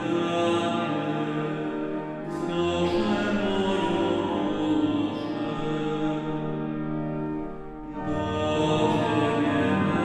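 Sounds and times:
pipe organ sustained chords: 0:00.0 - 0:10.0.

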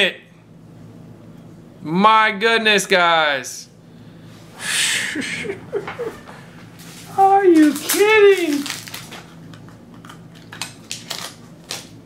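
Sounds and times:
card packaging crinkling: 0:06.8 - 0:12.0.

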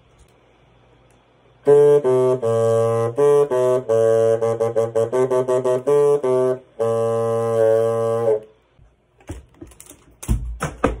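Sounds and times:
handling knocks and thumps: 0:08.8 - 0:11.0.

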